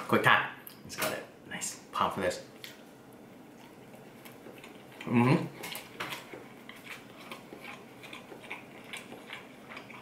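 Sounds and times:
person chewing food: 2.6 - 10.0.

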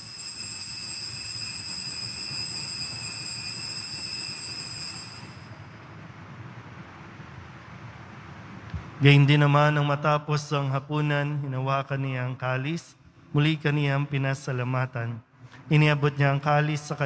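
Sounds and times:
altar bell ringing: 0.0 - 5.8.

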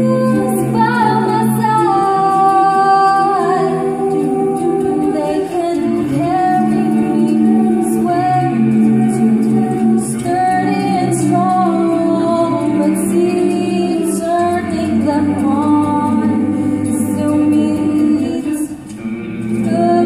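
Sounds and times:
mixed choir singing a cappella: 0.0 - 20.0.

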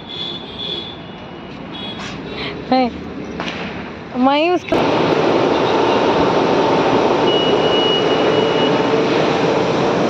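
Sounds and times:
high electronic tone: 7.2 - 8.9.

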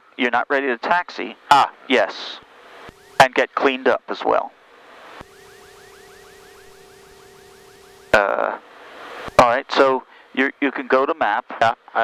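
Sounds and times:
electronic warbling tone: 5.2 - 8.2.

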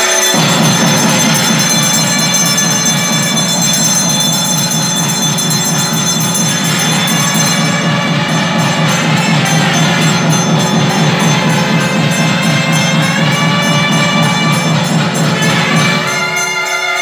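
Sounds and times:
loud devotional music: 0.0 - 17.0
temple bells ringing: 0.0 - 17.0.

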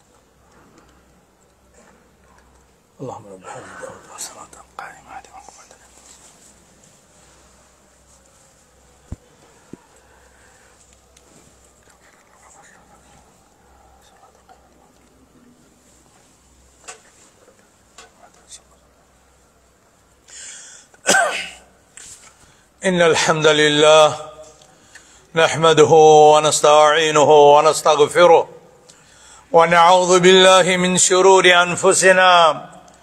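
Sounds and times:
man whispering into microphone: 3.0 - 6.6, 9.6 - 19.6
man breathing in: 20.3 - 21.0
man sneezing: 21.0 - 21.7.

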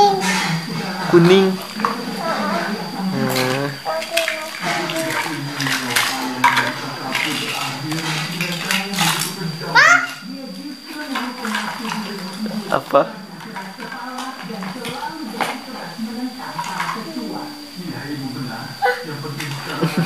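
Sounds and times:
child murmuring and humming: 0.0 - 0.5, 2.2 - 5.4, 9.8 - 10.2, 18.8 - 19.1
plastic toys clattering: 3.3 - 17.4, 18.8 - 20.0
child squealing: 9.8 - 10.2.

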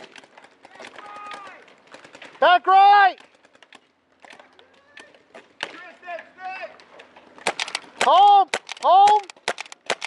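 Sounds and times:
distant paintball markers firing: 0.0 - 10.0.

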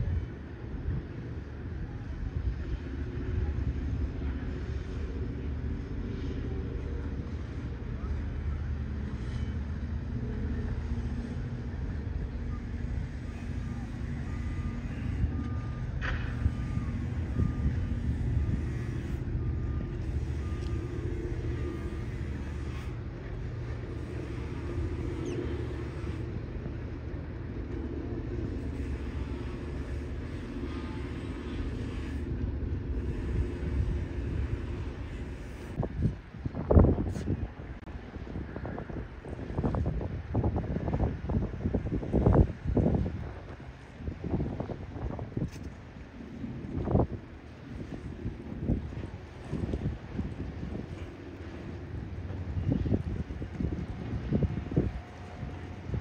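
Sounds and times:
low engine rumble: 0.0 - 56.0.

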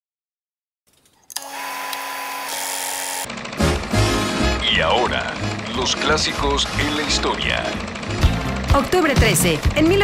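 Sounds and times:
film projector whirring: 1.3 - 10.0.

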